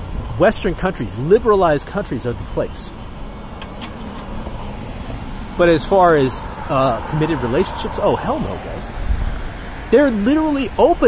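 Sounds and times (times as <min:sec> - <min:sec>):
road traffic hum: 0:00.0 - 0:11.0.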